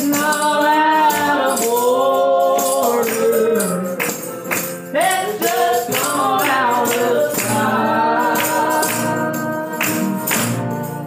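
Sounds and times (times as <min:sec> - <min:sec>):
shaken percussion: 0:00.0 - 0:11.0
voices singing gospel: 0:00.0 - 0:11.0.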